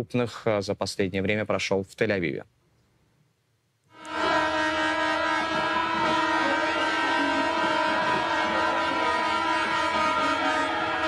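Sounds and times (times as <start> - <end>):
horns blowing long blasts: 3.9 - 11.0
street protest crowd: 4.0 - 11.0.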